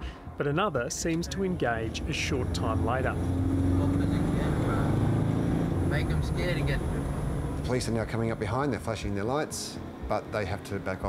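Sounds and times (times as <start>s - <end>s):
car engine and road drone: 0.0s - 11.0s.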